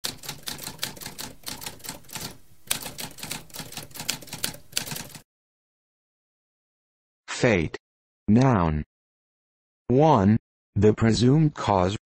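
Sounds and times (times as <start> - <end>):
typewriter keys typing: 0.0 - 5.2.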